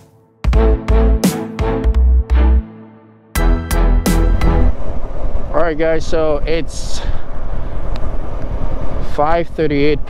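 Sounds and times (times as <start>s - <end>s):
road noise: 3.3s - 10.0s.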